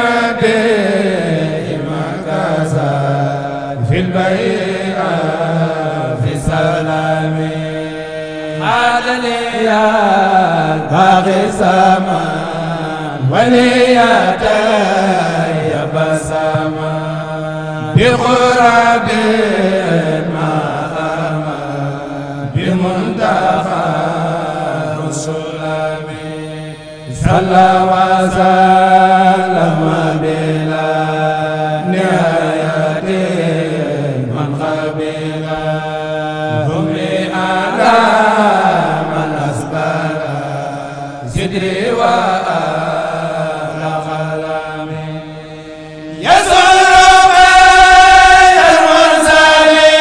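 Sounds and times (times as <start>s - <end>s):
man chanting: 0.0s - 50.0s.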